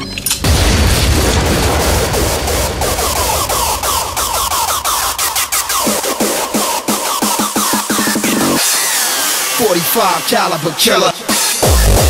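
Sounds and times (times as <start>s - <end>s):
distorted kick drums: 0.6s - 8.6s, 11.4s - 12.0s
hardcore electronic dance music: 1.8s - 12.0s.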